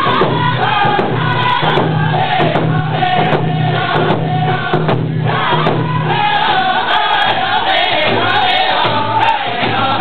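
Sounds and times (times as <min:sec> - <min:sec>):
group singing in unison: 0:00.0 - 0:10.0
hand drums: 0:00.0 - 0:10.0.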